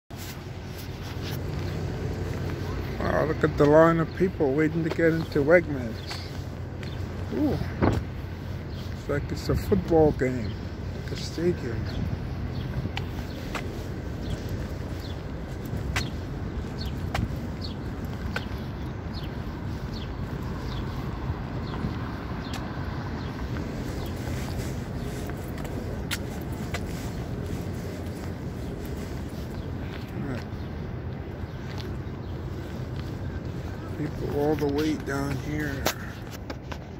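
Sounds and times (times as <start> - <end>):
city street rumble: 0.1 - 36.9.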